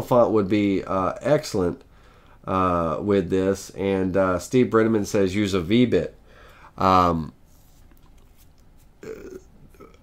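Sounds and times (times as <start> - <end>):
man saying uh: 2.5 - 6.2, 6.8 - 7.4.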